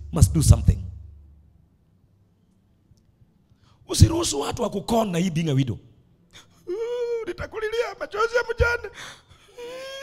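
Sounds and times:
man's high wailing cry: 0:06.6 - 0:10.0.

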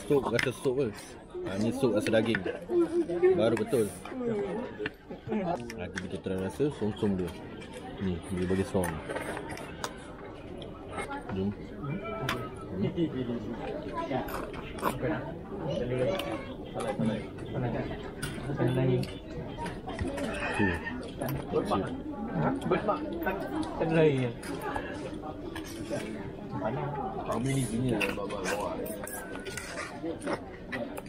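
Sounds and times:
faint background noise: 0:00.0 - 0:31.0
indistinct chatter: 0:00.0 - 0:31.0.

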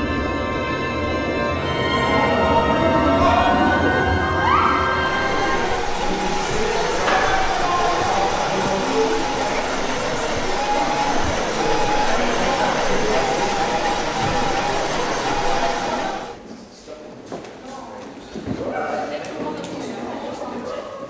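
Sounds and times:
faint sustained instrument notes: 0:00.0 - 0:16.4
crowd talking in a hall: 0:00.0 - 0:21.0.

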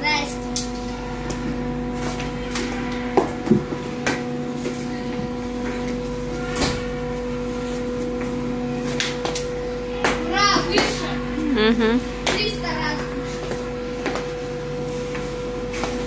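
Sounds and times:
steady mechanical hum: 0:00.0 - 0:16.0.

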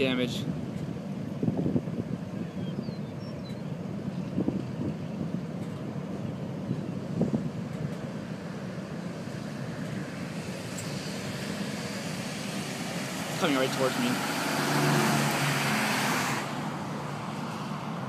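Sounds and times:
moving vehicle: 0:00.0 - 0:18.0
wind noise on microphone: 0:00.4 - 0:08.4.

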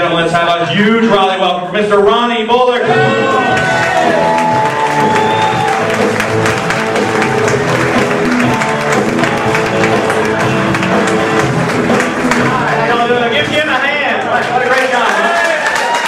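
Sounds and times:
audience applause: 0:03.2 - 0:13.2, 0:14.1 - 0:16.0
walk-on music with steady beat: 0:03.6 - 0:13.4.

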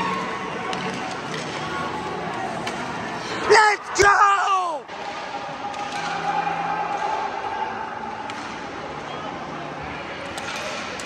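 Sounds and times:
crowd chatter: 0:00.0 - 0:11.0
light clicks from hockey play: 0:00.1 - 0:03.1, 0:05.0 - 0:07.2, 0:08.2 - 0:08.9.

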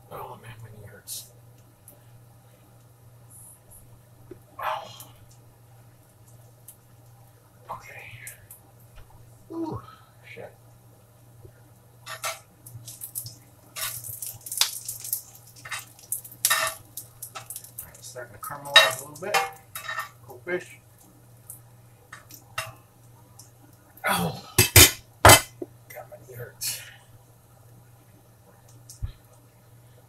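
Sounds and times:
steady low hum: 0:00.0 - 0:30.0
sharp metal clanks: 0:24.6 - 0:25.6.

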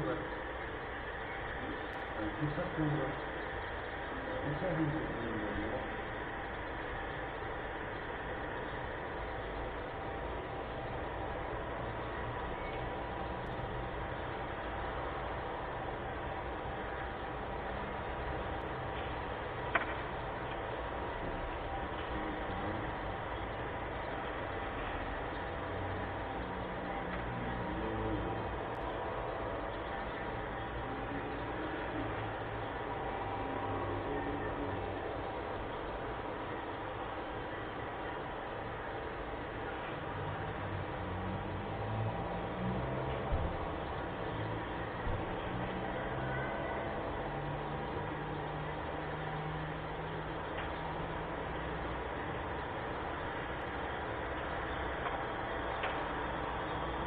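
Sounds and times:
steady background noise: 0:00.0 - 0:57.0.

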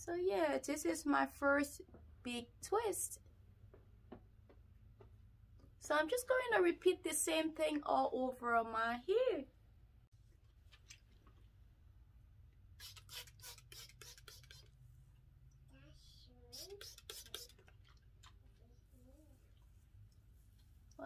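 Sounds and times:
hair brushing scratching: 0:12.8 - 0:14.8, 0:16.5 - 0:17.6
faint child's voice: 0:15.7 - 0:17.6, 0:18.6 - 0:19.5.

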